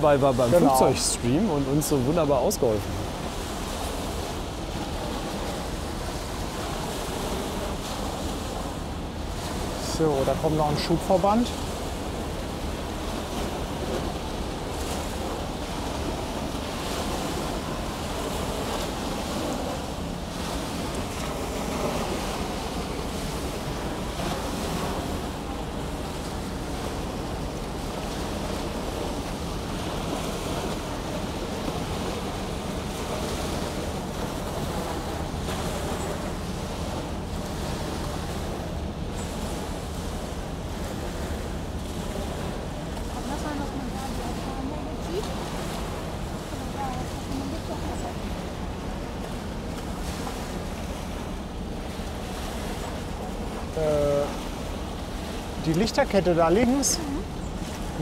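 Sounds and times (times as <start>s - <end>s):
small waves washing on beach: 0.0s - 58.0s.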